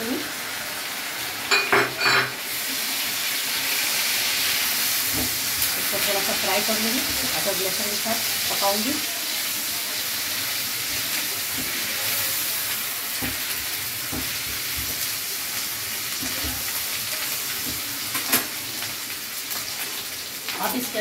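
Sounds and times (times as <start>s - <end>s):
onions sizzling in hot oil: 0.0s - 21.0s.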